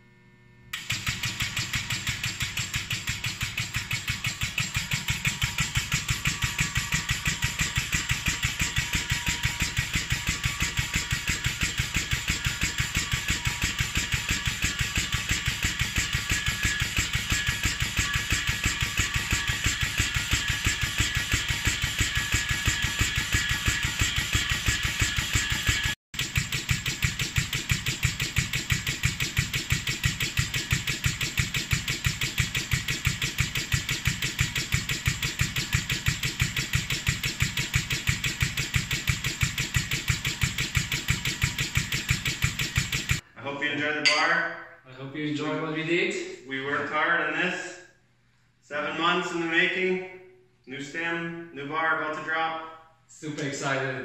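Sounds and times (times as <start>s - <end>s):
pneumatic test rig pulsing: 0.7s - 43.3s.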